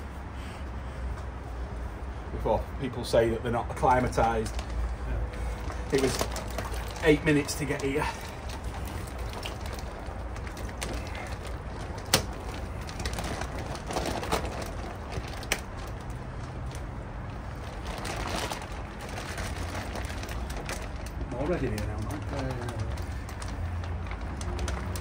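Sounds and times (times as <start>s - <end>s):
plastic bag crinkling: 3.8s - 25.0s
water sloshing: 4.6s - 21.3s.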